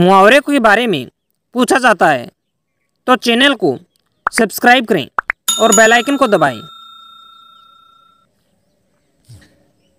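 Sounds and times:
bell-like ding: 5.5s - 8.2s.

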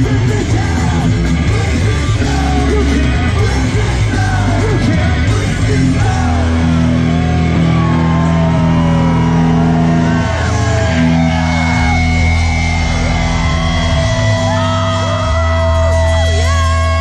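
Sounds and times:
bass guitar: 0.0s - 17.0s
distorted electric guitars: 0.0s - 17.0s
drums: 0.0s - 17.0s.

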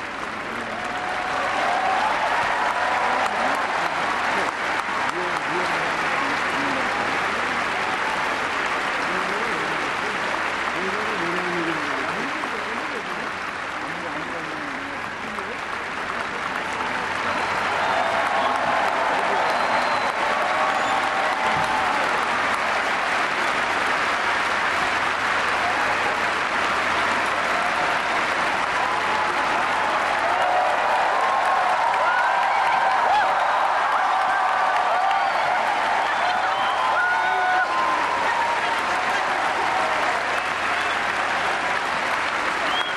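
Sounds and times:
voices calling out and cheering: 0.0s - 12.5s, 14.8s - 42.9s
audience applauding: 0.0s - 42.9s.

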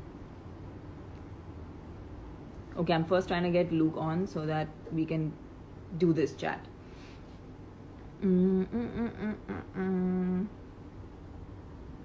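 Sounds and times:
woman humming: 8.1s - 10.6s.

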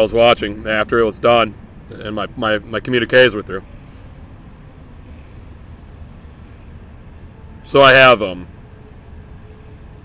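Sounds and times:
low background rumble: 0.0s - 7.4s.

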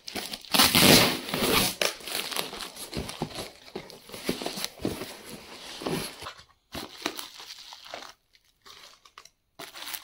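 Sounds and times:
packing tape ripping: 0.0s - 2.7s
cardboard crinkling and rustling: 0.0s - 10.0s.

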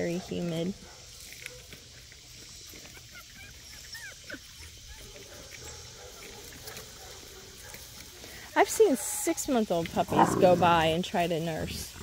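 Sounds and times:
puppies whimpering: 2.6s - 6.8s, 10.0s - 11.0s
puppies squeaking: 2.7s - 5.8s.

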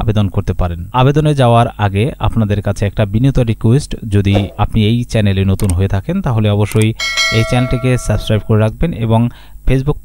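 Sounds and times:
person speaking: 4.3s - 4.9s
bright bell chime: 7.0s - 8.6s.

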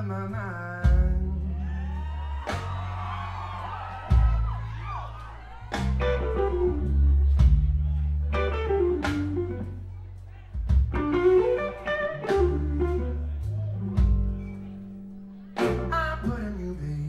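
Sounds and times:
slow blues band playing: 0.0s - 17.0s
electric guitar phrases: 5.9s - 17.0s.

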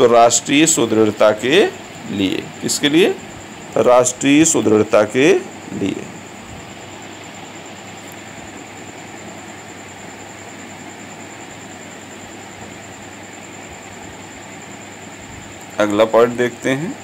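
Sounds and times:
high-pitched whine: 0.0s - 17.0s
steady background noise: 0.0s - 17.0s.

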